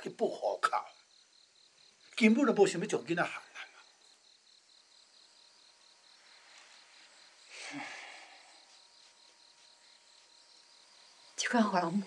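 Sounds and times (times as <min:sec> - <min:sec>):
crickets chirping: 0:00.0 - 0:12.0
person exhaling: 0:07.5 - 0:08.6.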